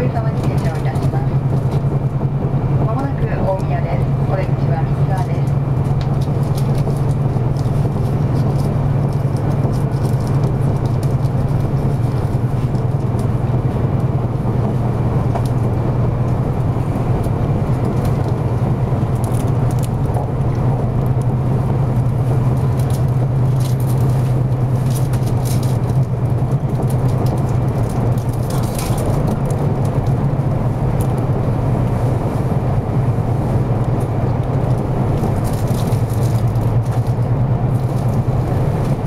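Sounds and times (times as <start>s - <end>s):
train cabin low hum: 0.0s - 39.0s
train rolling noise: 0.0s - 39.0s.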